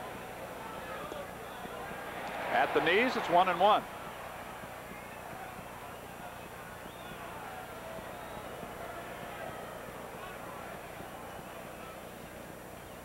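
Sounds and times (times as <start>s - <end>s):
crowd murmur: 0.0s - 13.0s.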